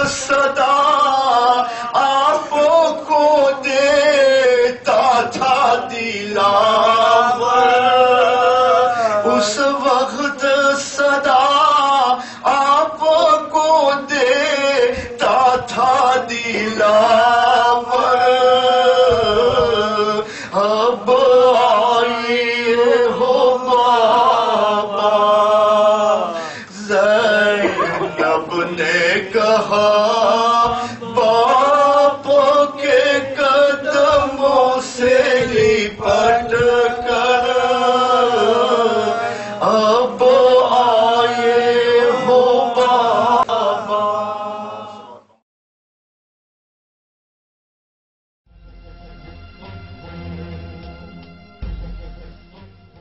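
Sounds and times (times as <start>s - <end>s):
man chanting: 0.0s - 44.7s.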